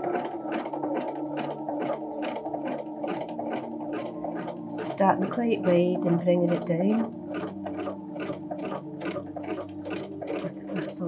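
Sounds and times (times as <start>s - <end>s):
sewing machine stitching: 0.0s - 11.0s.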